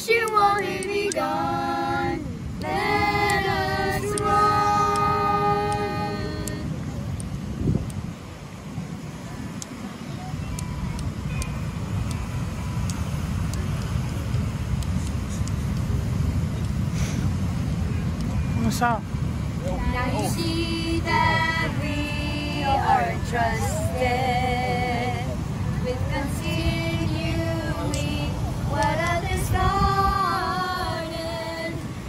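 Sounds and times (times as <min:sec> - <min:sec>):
woman and children singing hymn: 0:00.0 - 0:06.8, 0:19.8 - 0:32.0
wind and surf rumble: 0:00.0 - 0:32.0.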